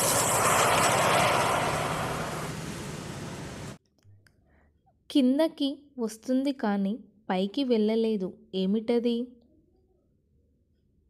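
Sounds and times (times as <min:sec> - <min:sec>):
loud steady rushing noise: 0:00.0 - 0:03.8.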